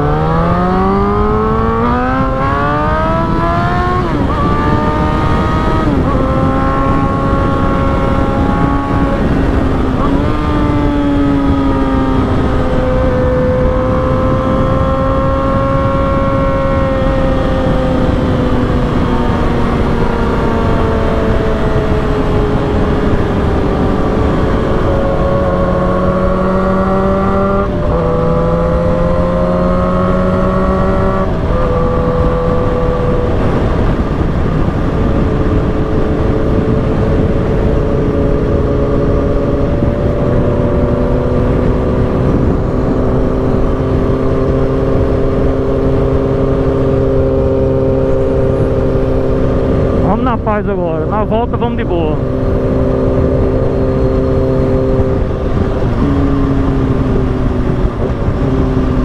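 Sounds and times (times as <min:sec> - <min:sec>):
motorcycle engine running: 0:00.0 - 0:59.0
wind rushing: 0:00.0 - 0:59.0.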